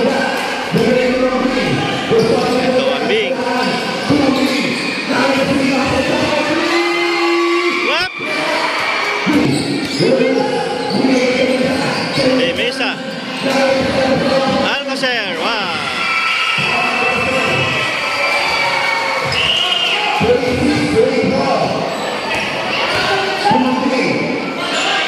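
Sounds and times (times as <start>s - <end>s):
spectators' voices and shouts: 0.0s - 25.0s.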